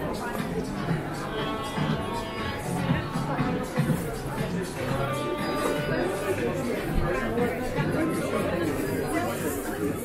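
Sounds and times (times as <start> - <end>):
chatter of people talking: 0.0 - 10.0.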